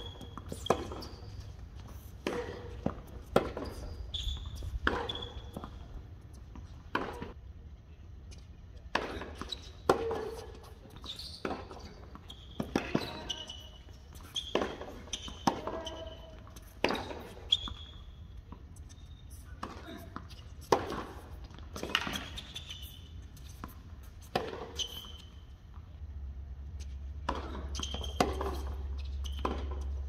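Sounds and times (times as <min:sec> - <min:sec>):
tennis balls bouncing: 0:00.0 - 0:07.4, 0:08.8 - 0:19.0, 0:19.6 - 0:22.6, 0:23.4 - 0:25.8, 0:26.8 - 0:30.0
tennis rackets hitting balls: 0:00.0 - 0:07.4, 0:08.8 - 0:18.9, 0:19.6 - 0:25.4, 0:26.8 - 0:30.0.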